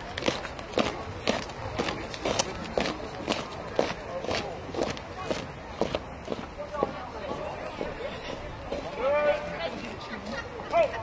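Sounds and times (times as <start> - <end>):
soldiers marching in boots on tarmac: 0.0 - 11.0.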